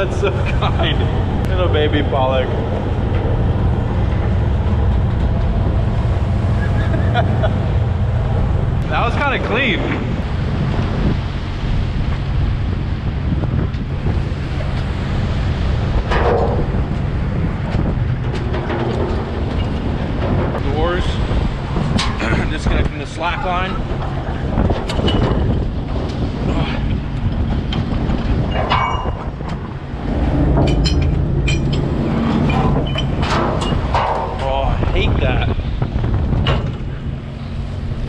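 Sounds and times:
boat engine drone: 0.0s - 38.0s
wind buffeting microphone: 0.0s - 38.0s.

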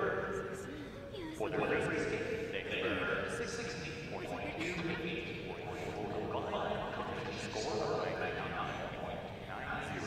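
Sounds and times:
arena crowd murmur: 0.0s - 10.0s
indistinct voices: 0.0s - 10.0s.

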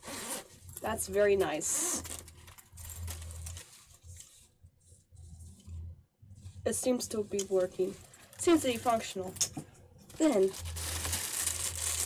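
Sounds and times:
fabric rustling: 10.1s - 12.0s.

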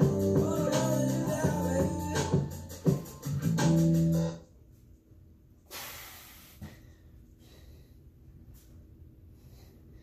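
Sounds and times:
man exhaling: 5.7s - 8.0s.

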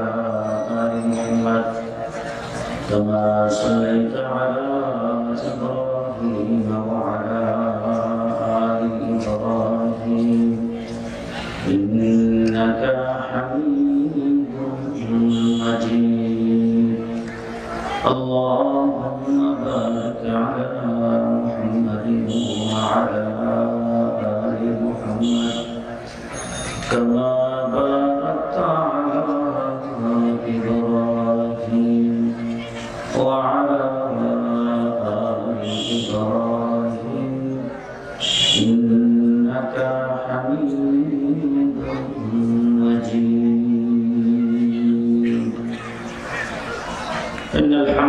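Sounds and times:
man chanting through a microphone: 0.0s - 48.0s.

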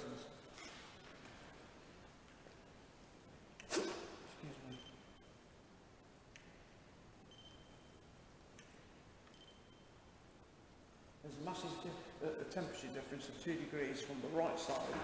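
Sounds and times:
short faint high beep: 7.3s - 8.0s.

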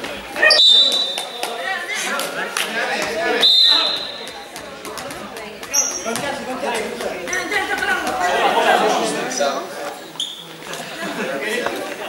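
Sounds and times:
voices chattering in echoing hall: 0.0s - 12.0s.

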